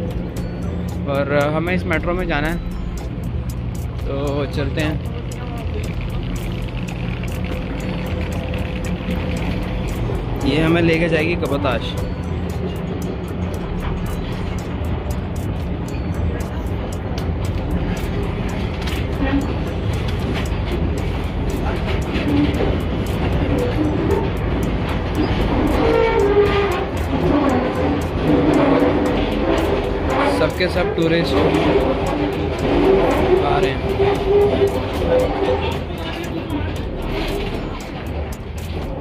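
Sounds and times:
background music: 0:00.0 - 0:39.0
escalator rumbling: 0:00.0 - 0:39.0
people's voices: 0:00.0 - 0:39.0.

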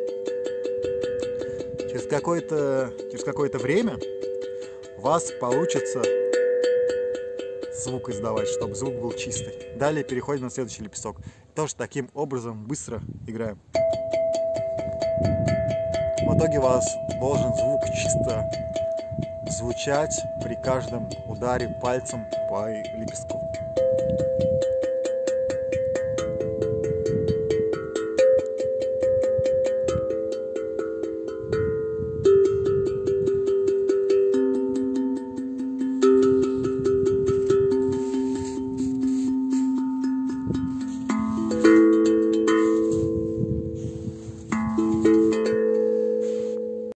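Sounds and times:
steel tongue drum notes: 0:00.0 - 0:12.5, 0:13.3 - 0:47.0.

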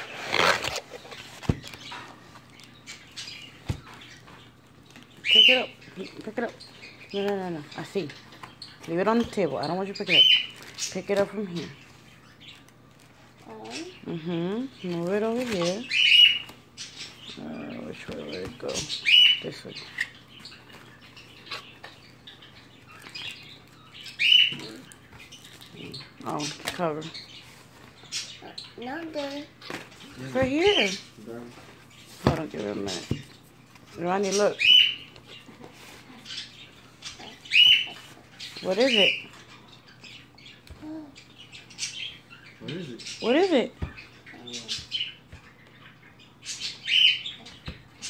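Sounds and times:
wrapping paper rustling: 0:00.0 - 0:02.8, 0:10.4 - 0:11.4.

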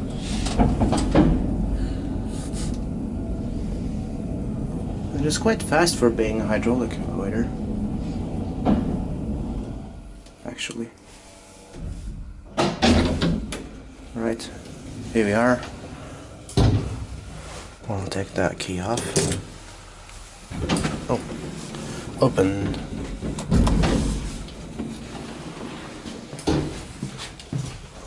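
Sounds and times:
elevator car rumble: 0:00.0 - 0:10.7, 0:11.8 - 0:27.5
elevator knock: 0:05.6 - 0:09.9.

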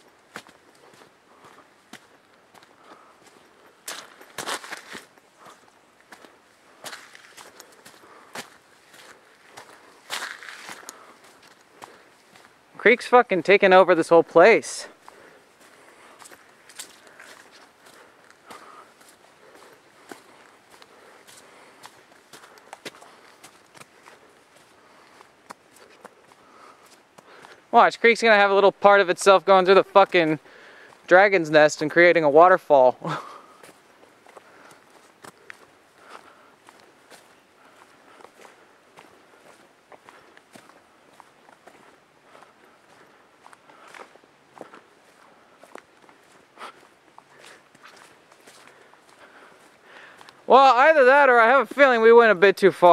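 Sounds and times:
footsteps on dirt trail: 0:00.0 - 0:52.9.

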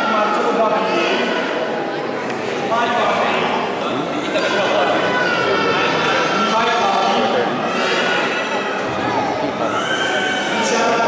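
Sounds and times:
murmur of many people talking: 0:00.0 - 0:11.0.

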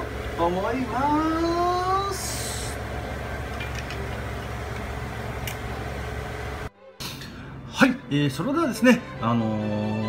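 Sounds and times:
steady low hum: 0:00.0 - 0:09.2.

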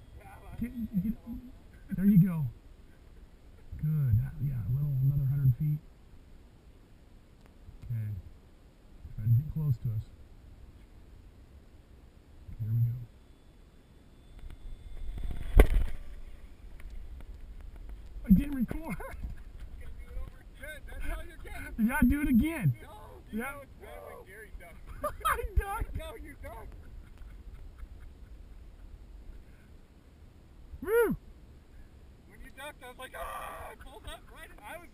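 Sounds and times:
loud whoop: 0:30.8 - 0:31.2.

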